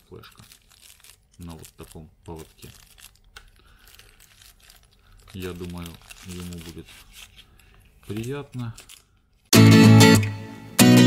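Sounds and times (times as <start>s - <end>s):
faint rustling of cardboard box: 0.0s - 9.5s.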